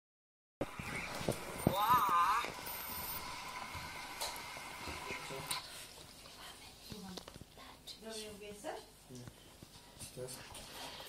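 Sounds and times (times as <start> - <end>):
high warbling electronic voice: 0.6 - 3.2.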